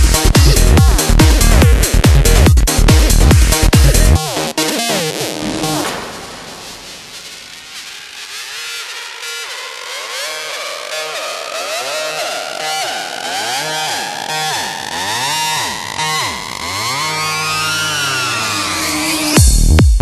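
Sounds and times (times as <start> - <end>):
synthesizer lines gliding in pitch: 0.1 - 19.4.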